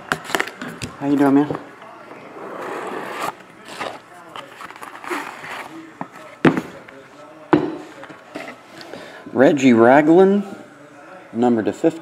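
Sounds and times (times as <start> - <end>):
cardboard and plastic rustling: 3.1 - 6.4.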